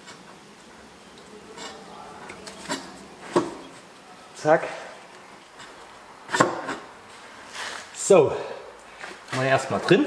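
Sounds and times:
faint rubbing sound: 0:07.1 - 0:08.0.

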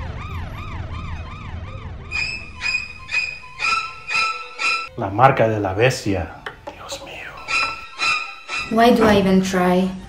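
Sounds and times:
pulsed horn-like siren tone: 0:00.0 - 0:04.9, 0:07.4 - 0:09.1
siren yelping: 0:00.0 - 0:04.9, 0:07.4 - 0:09.2.

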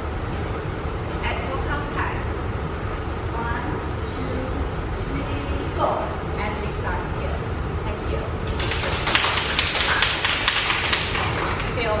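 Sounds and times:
group clapping: 0:08.4 - 0:11.8.

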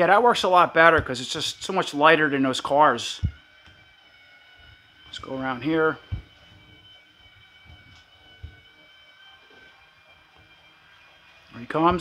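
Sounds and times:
toy monorail motor whining: 0:00.0 - 0:12.0.

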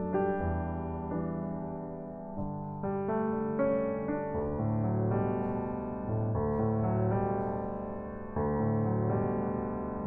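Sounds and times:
piano sustained chords: 0:00.0 - 0:10.0.

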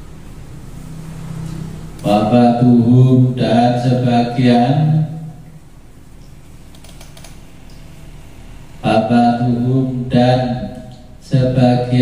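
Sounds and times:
man chanting: 0:02.0 - 0:05.4, 0:08.8 - 0:12.0.

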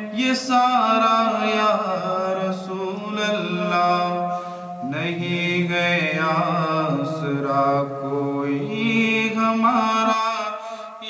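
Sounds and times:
man chanting in held notes: 0:00.0 - 0:11.0.

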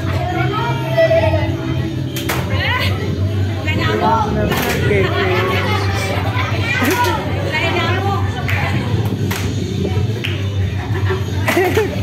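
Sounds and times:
children shouting and chattering: 0:00.0 - 0:12.0
dance music: 0:00.0 - 0:12.0
sharp claps or knocks: 0:09.3 - 0:09.6.

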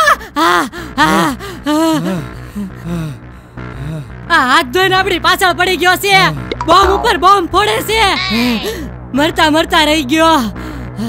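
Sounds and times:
man gasping cries: 0:08.2 - 0:08.9.

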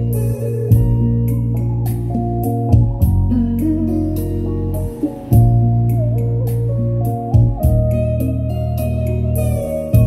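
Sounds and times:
slow music with deep bass: 0:00.0 - 0:10.0.

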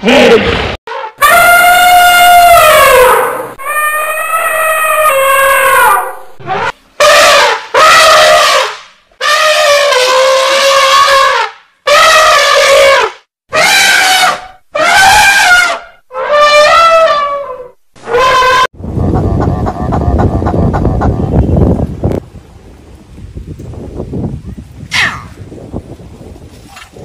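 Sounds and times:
elephants trumpeting: 0:01.2 - 0:18.7.

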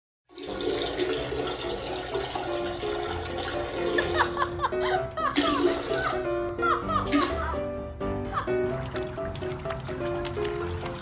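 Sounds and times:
toilet flushing: 0:00.3 - 0:04.4, 0:05.3 - 0:06.3, 0:08.7 - 0:11.0.

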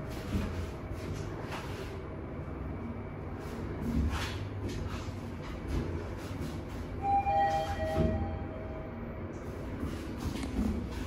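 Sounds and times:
elevator low rumble: 0:00.0 - 0:11.0
two-tone electronic chime: 0:07.0 - 0:09.0.

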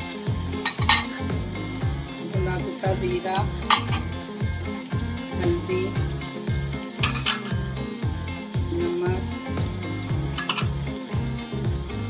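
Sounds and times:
music with deep beat: 0:00.0 - 0:12.0
oil sizzling in pot: 0:00.0 - 0:12.0.

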